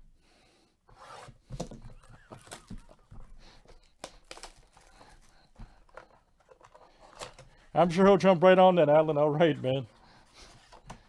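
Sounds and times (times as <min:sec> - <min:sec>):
plastic wrap crinkling and tearing: 0:02.0 - 0:03.1, 0:03.8 - 0:05.3.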